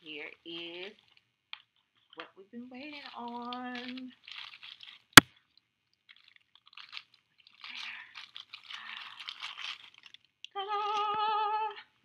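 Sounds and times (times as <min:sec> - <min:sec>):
plastic packaging crinkling: 0:00.4 - 0:11.3.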